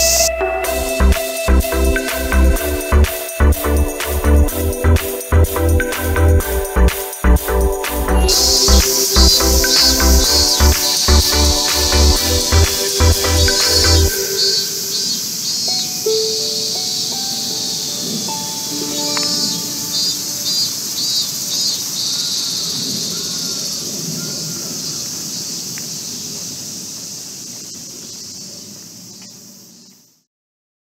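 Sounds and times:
cicadas sizzling chorus: 0:00.0 - 0:30.2.

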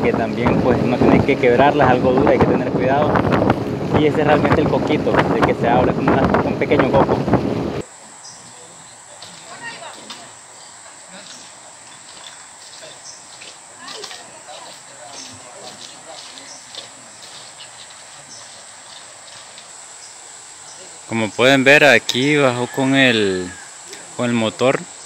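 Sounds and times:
high-pitched insect drone: 0:07.8 - 0:15.9, 0:16.5 - 0:25.0
faint distant voices: 0:07.8 - 0:24.9.

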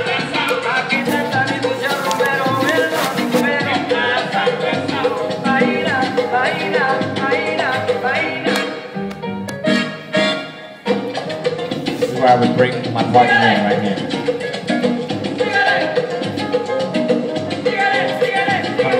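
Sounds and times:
salsa music playing: 0:00.0 - 0:18.9.

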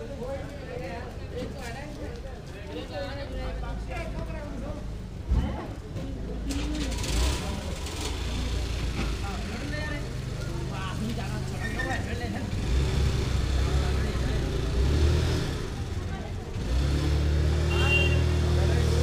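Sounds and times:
motor vehicle engines humming: 0:05.9 - 0:19.0.

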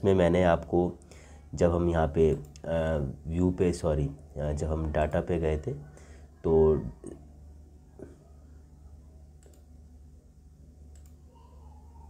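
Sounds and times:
low electrical hum: 0:00.0 - 0:12.0
computer mouse clicks: 0:09.4 - 0:09.7, 0:10.9 - 0:11.2.

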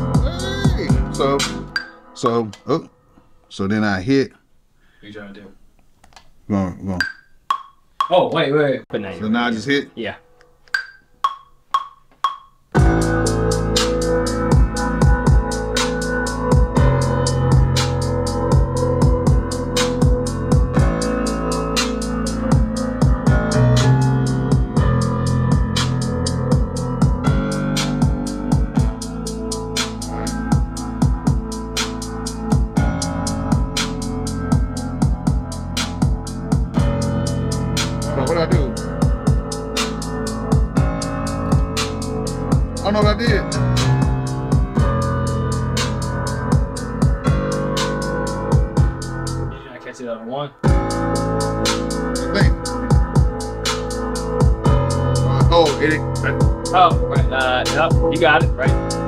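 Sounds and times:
trap beat with heavy bass: 0:00.0 - 0:01.9, 0:11.3 - 0:49.5, 0:50.7 - 0:59.0.

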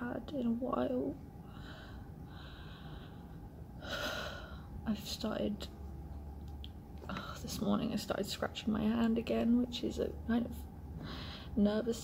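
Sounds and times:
woman breathing: 0:01.4 - 0:04.8, 0:10.9 - 0:11.6.

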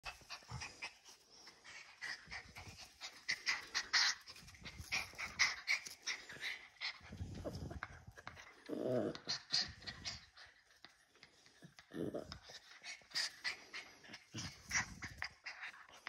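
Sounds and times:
dog panting: 0:00.0 - 0:16.0.

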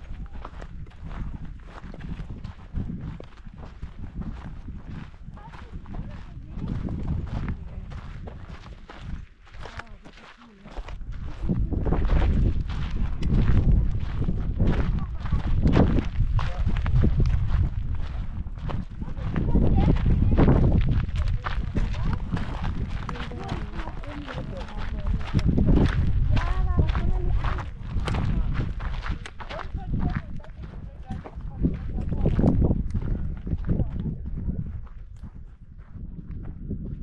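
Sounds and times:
footsteps on gravel: 0:00.0 - 0:37.0
wind buffeting microphone: 0:00.0 - 0:37.0.

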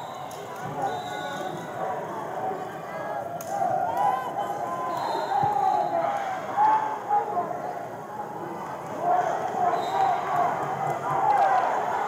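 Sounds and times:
echoing chatter of voices: 0:00.0 - 0:12.0.

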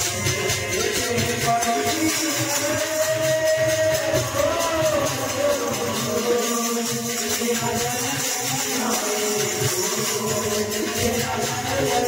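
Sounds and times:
devotional music: 0:00.0 - 0:12.0.

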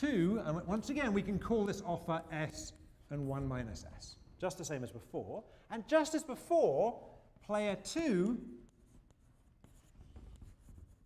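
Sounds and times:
chalk scratching on blackboard: 0:08.6 - 0:11.0.

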